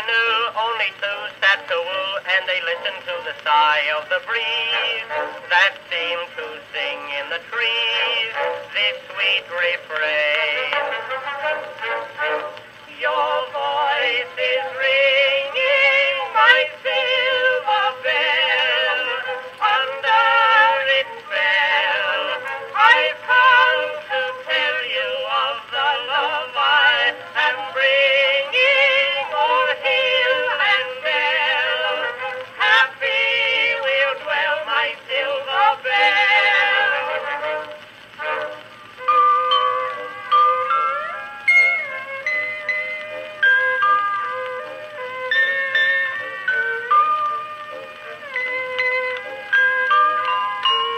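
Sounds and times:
soprano and tenor singing duet: 0.0 - 50.9.

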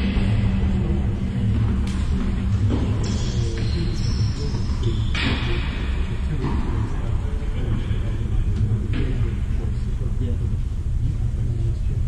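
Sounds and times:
faint indistinct voices: 0.0 - 12.0
low rumble: 0.0 - 12.0.

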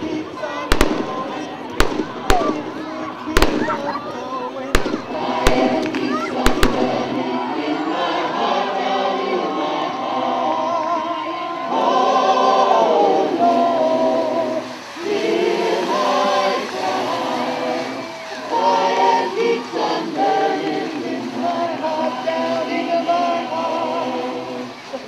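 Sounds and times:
choir singing held notes: 0.0 - 25.0.

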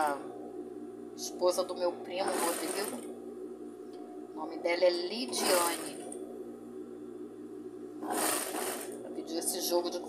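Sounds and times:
sewing machine motor humming: 2.2 - 3.1, 5.3 - 6.2, 8.0 - 9.0.

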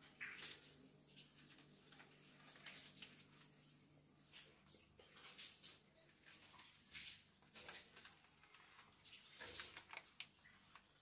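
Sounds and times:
plastic bag rustling: 0.0 - 4.6, 5.5 - 11.0.

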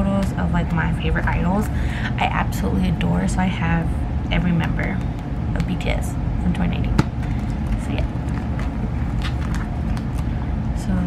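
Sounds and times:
steady low rumble: 0.0 - 11.0
plastic sleeve page turning: 7.2 - 10.3.

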